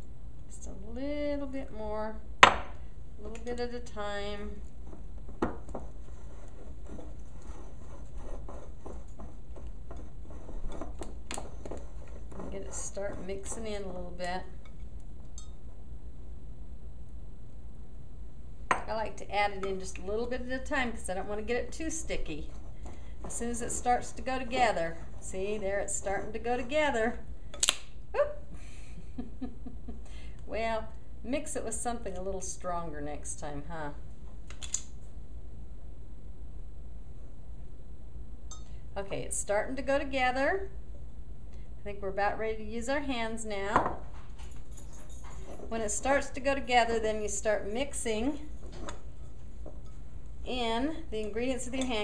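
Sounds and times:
steady low hum: 0.0s - 52.0s
hands mixing dough: 2.6s - 15.9s, 18.8s - 27.8s, 45.4s - 52.0s
spoon clinking against glass bowl: 15.4s - 15.6s, 38.5s - 38.8s.

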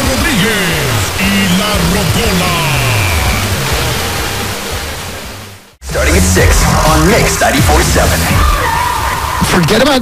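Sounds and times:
radio music: 0.0s - 10.0s.

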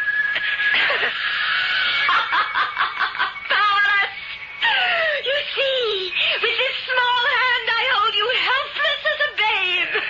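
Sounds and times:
woman laughing tauntingly: 0.4s - 6.7s.

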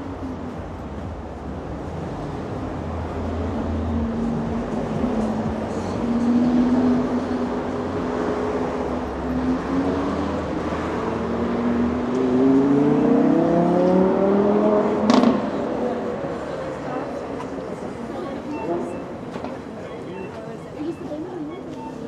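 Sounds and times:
vehicle accelerating away: 3.1s - 16.1s.

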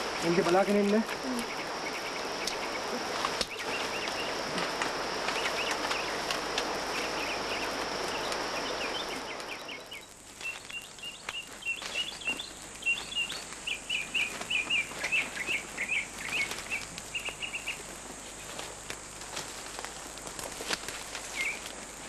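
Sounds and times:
birds chirping: 0.0s - 18.6s, 21.2s - 21.7s
steady background noise: 0.0s - 22.0s.

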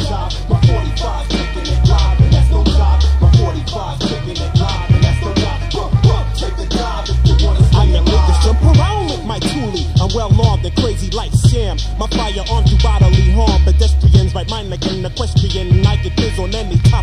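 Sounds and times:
deep held bass notes: 0.0s - 17.0s
vocal line: 0.0s - 17.0s
hard drum hits: 0.5s - 9.1s.

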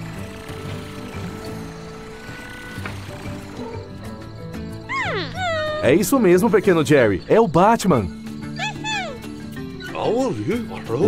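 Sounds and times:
soft cartoon music: 0.0s - 11.0s.

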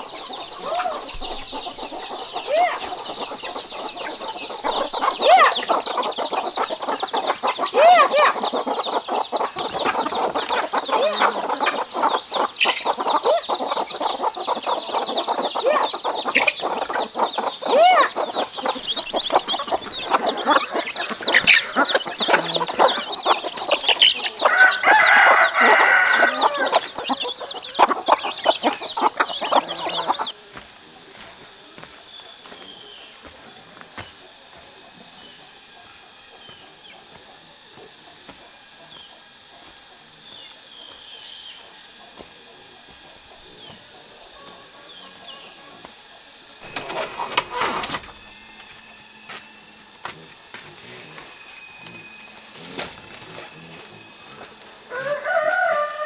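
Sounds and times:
chickens clucking: 0.0s - 56.0s
rooster crowing: 19.6s - 30.3s, 54.0s - 56.0s.

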